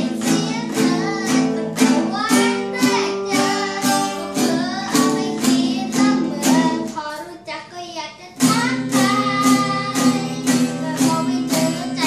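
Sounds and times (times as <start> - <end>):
acoustic guitar strumming: 0.0 - 7.3, 8.3 - 12.0
boy singing: 0.0 - 12.0.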